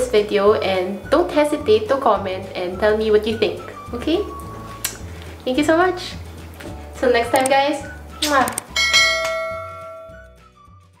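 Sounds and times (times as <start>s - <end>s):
low background music: 0.0s - 11.0s
notification bell ding: 8.8s - 10.3s.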